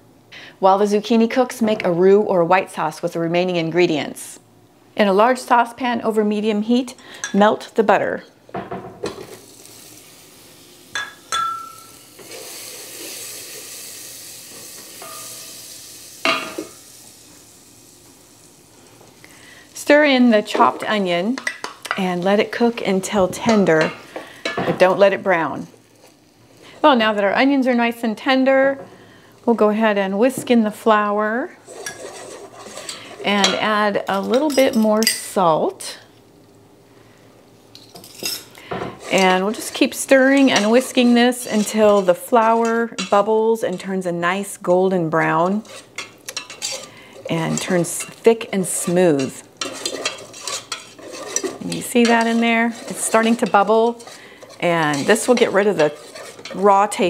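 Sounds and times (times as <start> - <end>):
butter sizzling in saucepan: 8.6 - 57.0
wire whisk scraping a saucepan: 31.6 - 33.3, 38.1 - 44.0, 45.2 - 57.0.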